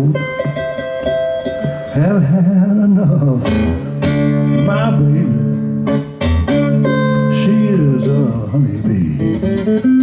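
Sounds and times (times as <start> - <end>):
acoustic guitars playing slow blues: 0.0 - 10.0.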